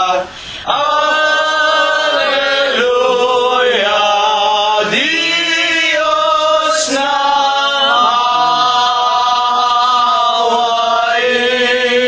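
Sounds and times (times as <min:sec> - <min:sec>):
voices singing slow chant: 0:00.0 - 0:12.0.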